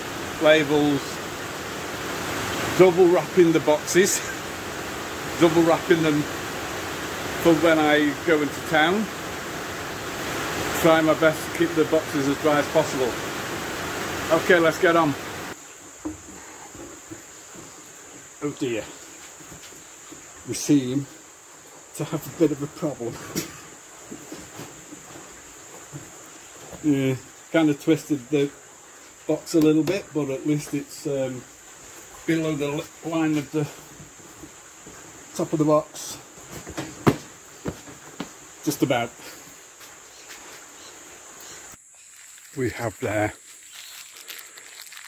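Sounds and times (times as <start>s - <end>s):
high insect drone: 0.0s - 45.0s
faint bumps and rustles: 15.9s - 20.4s, 23.0s - 27.0s, 36.0s - 38.5s
knock on cardboard box: 36.7s - 37.9s.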